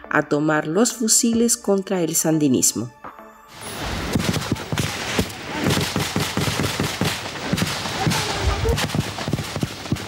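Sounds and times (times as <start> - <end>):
rapid gunfire: 4.0 - 10.0.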